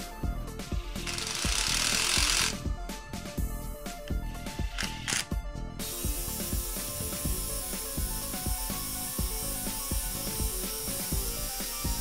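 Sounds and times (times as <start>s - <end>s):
steady hiss: 5.8s - 12.0s.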